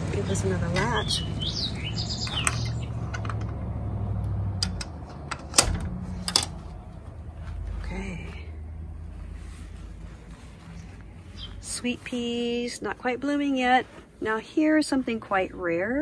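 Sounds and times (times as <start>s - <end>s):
low steady hum: 0.0s - 16.0s
metal latch clicking: 4.6s - 6.6s.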